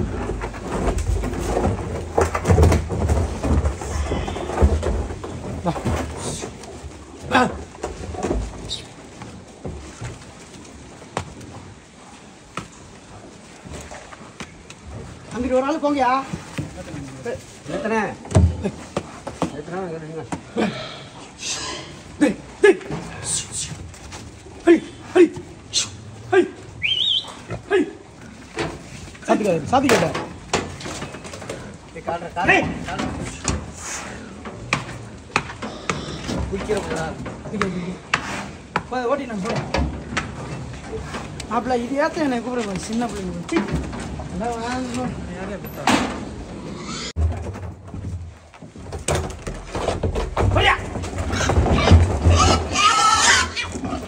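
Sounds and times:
pigs grunting: 0.0s - 9.0s, 20.4s - 23.8s, 24.4s - 38.8s, 43.5s - 47.2s, 50.6s - 54.0s
pigs squealing: 35.7s - 36.4s, 46.5s - 47.2s, 51.3s - 54.0s.

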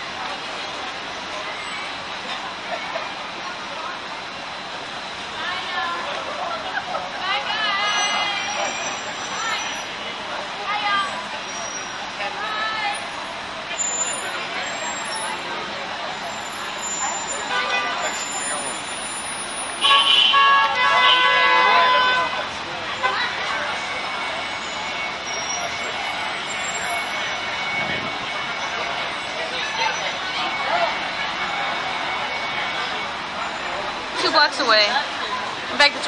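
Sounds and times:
passing cars: 0.0s - 36.0s
street traffic: 0.0s - 36.0s
voices: 0.0s - 36.0s.

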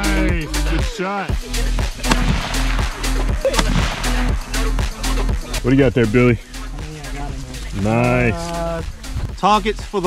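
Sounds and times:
background music with steady beat: 0.0s - 10.0s
rifle shot: 2.0s - 4.8s.

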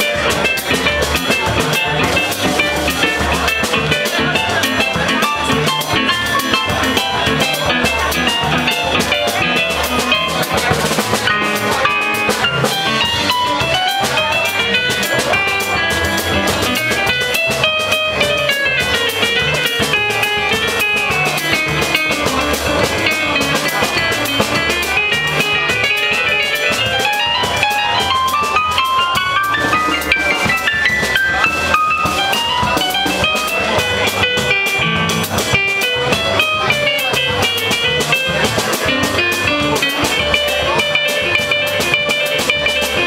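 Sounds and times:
bass line: 0.0s - 43.0s
drum kit: 0.0s - 43.0s.

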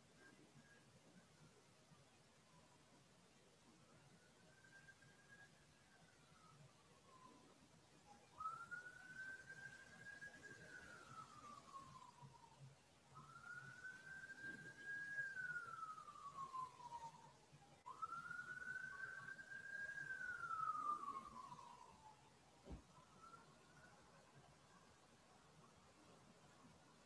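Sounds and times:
faint siren wailing: 0.1s - 27.0s.

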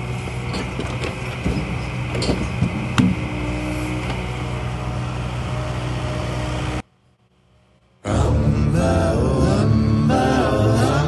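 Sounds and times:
excavator diesel engine running: 0.0s - 7.5s.

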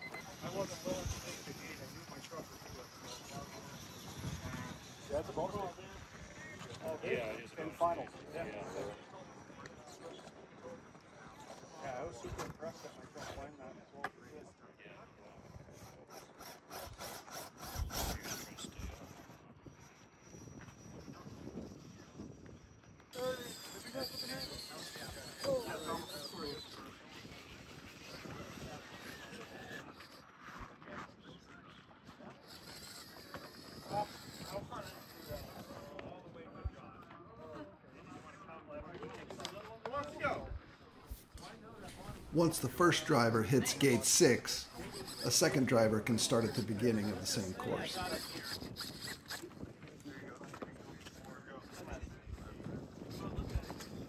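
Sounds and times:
tires scraping on rock: 32.4s - 35.9s
indistinct voices: 41.9s - 48.9s.

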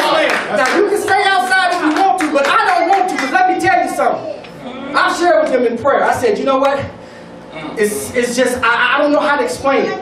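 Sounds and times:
hand clapping: 0.0s - 3.8s
man speaking loudly: 0.0s - 7.0s, 7.8s - 10.0s.

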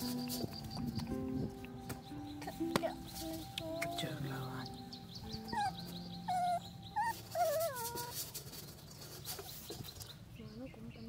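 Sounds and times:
puppy whimpering: 5.3s - 8.4s.

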